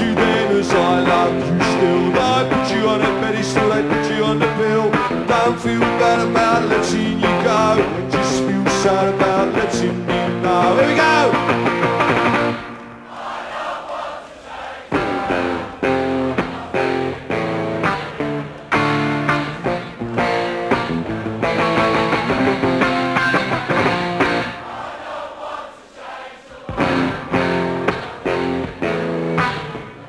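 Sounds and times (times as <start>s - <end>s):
electric guitar chords: 0.0s - 13.0s, 15.0s - 24.6s, 26.8s - 30.0s.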